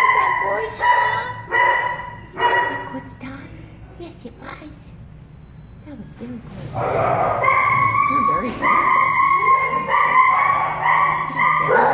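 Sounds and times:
dog whining: 0.0 - 3.1, 6.8 - 11.9.

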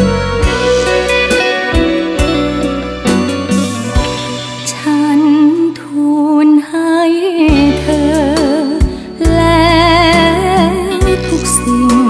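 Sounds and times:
soft backing accompaniment: 0.0 - 12.0
woman singing a slow ballad: 4.6 - 12.0.

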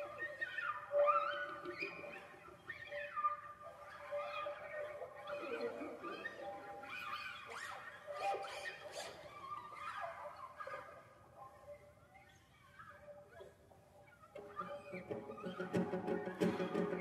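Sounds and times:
setar with bending notes: 14.4 - 17.0
classical guitar ensemble: 14.6 - 17.0.

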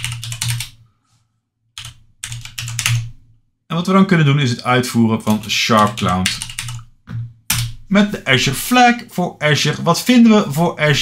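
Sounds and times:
computer keyboard typing: 0.0 - 0.8, 1.8 - 3.2, 5.2 - 6.8, 7.5 - 7.8.

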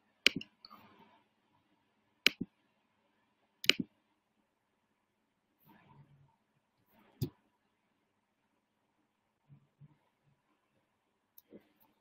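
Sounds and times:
mouse button click: 3.6 - 3.9.

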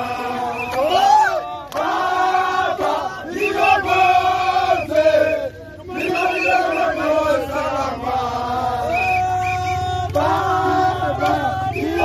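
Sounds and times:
crowd chanting in unison: 0.0 - 12.0.

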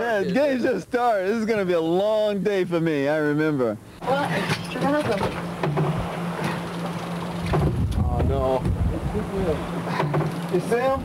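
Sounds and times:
boat engine droning: 4.0 - 11.0
wind and sea noise: 5.2 - 11.0.

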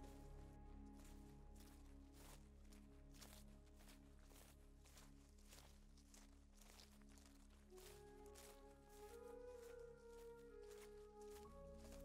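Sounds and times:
soft background music: 0.0 - 12.0
footsteps on dirt trail: 0.9 - 12.0.

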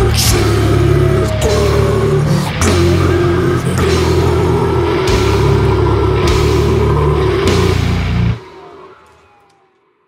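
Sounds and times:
distorted guitars and bass: 0.0 - 8.4
drums: 0.0 - 9.7.

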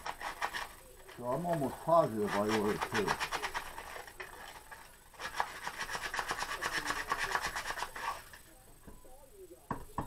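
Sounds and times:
rasping against wood: 0.0 - 4.0, 5.2 - 8.4.

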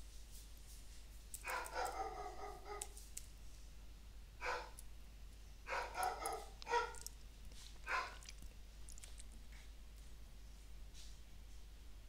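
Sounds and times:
dog drawn-out call: 5.7 - 7.0.

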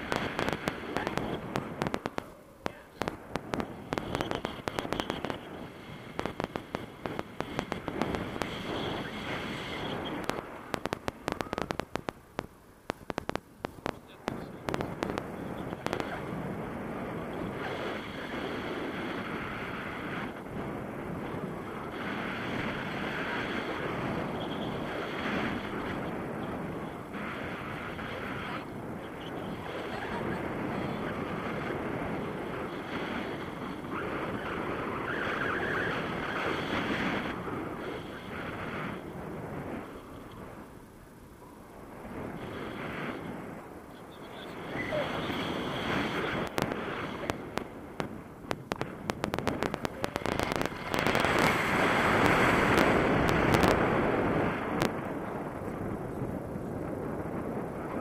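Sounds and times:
rapid crackling clicks: 0.0 - 16.3, 44.0 - 55.2
wind rushing over microphone: 0.0 - 58.0.

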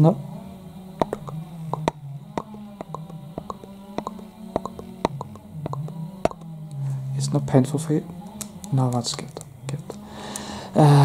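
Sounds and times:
distant chainsaw drone: 0.0 - 11.0
pen tapping on camera lens: 1.0 - 6.5.

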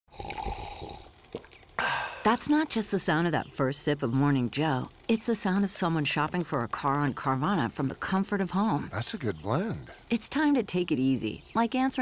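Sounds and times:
coffee being poured: 0.1 - 1.7
person sipping coffee: 0.1 - 2.2.

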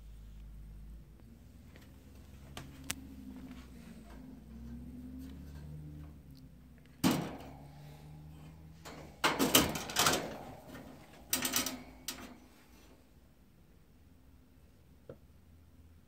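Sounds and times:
metal cage door clank: 6.9 - 12.9
metal rattling and clattering: 7.0 - 12.9.

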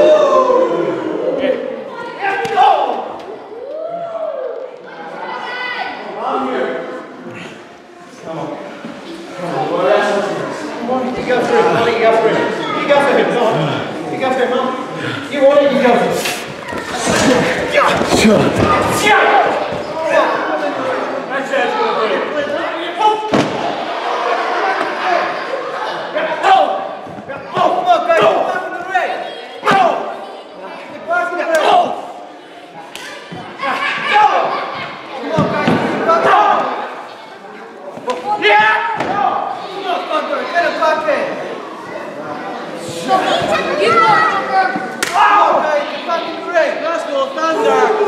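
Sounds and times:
crowd chatter: 0.0 - 48.0
voices calling in echoing hall: 0.0 - 48.0.

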